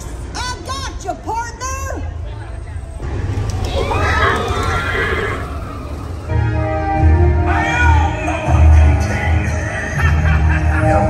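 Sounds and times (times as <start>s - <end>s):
horse whinny over loudspeakers: 3.6s - 6.4s.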